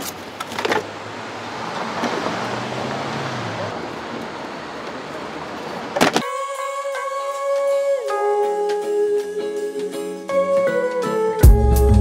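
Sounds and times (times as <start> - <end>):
car passing: 0.0 - 6.2
music: 6.2 - 12.0.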